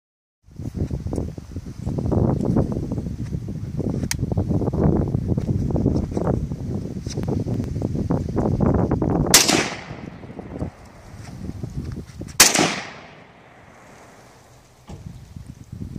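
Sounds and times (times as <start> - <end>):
wind rumbling on microphone: 0.4 - 15.9
rifle shot: 9.3 - 11.1, 12.4 - 14.4
faint sharp crack: 12.4 - 15.1.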